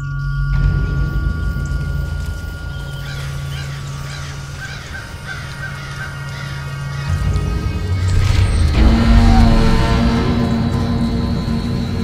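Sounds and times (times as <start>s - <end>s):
eerie music with low drone: 0.0s - 12.0s
crows cawing: 2.8s - 9.8s.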